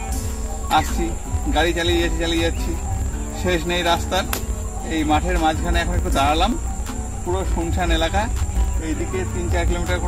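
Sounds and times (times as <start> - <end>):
insects droning: 0.0 - 10.0
man talking: 0.7 - 6.6, 7.2 - 10.0.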